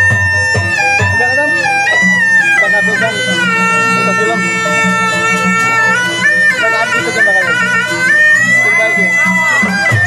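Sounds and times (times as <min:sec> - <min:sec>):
reedy trumpet melody: 0:00.0 - 0:10.0.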